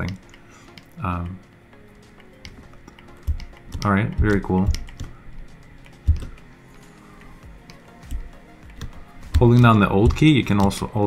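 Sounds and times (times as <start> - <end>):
quiet background music: 0.0 - 11.0
computer keyboard clicks: 2.2 - 5.2, 5.8 - 6.4, 7.6 - 10.9.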